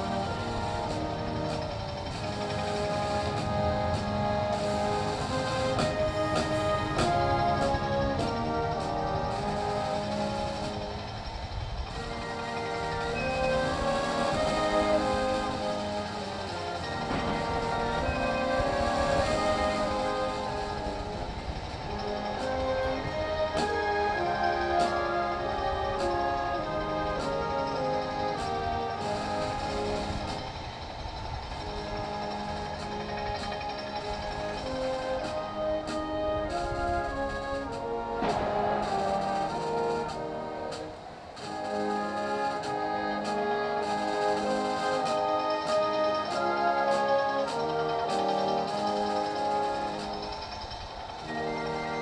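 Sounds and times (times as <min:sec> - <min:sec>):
steady low rumble: 0:00.0 - 0:46.7
military brass band playing: 0:00.0 - 0:52.0.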